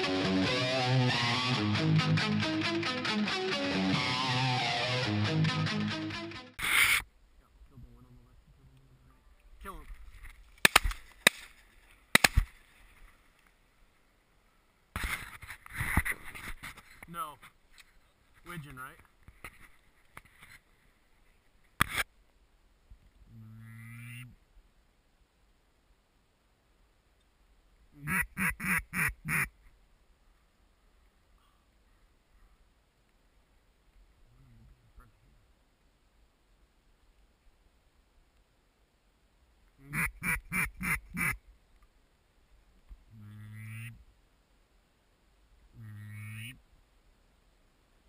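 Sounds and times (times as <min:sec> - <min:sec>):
duck call quacks: 0:28.0 - 0:29.5, 0:39.8 - 0:41.4, 0:43.2 - 0:44.0, 0:45.8 - 0:46.6.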